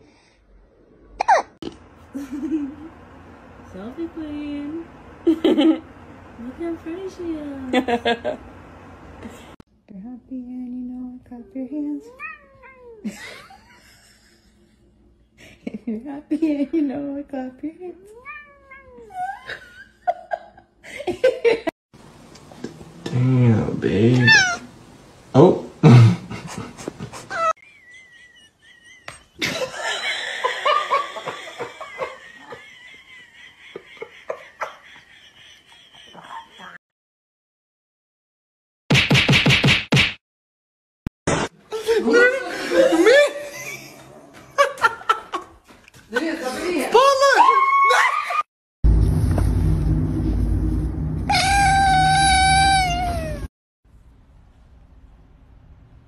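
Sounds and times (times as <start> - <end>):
person laughing: 2.2 - 2.9, 25.8 - 36.8, 41.7 - 45.5
cat meowing: 12.1 - 13.0, 18.2 - 19.1, 24.1 - 24.7
low steady rumble: 48.8 - 56.0.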